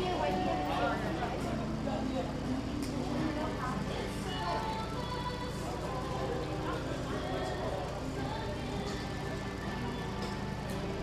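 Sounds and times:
music: 0.0 - 11.0
steady low hum: 0.0 - 11.0.

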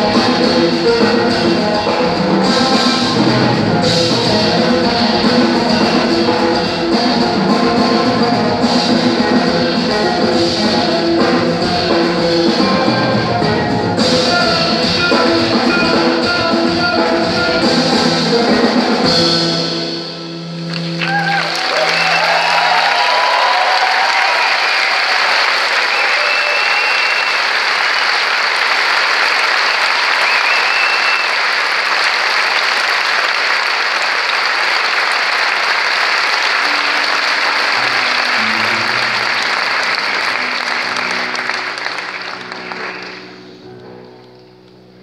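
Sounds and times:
audience cheering: 20.7 - 43.4
audience applauding: 20.7 - 43.6.

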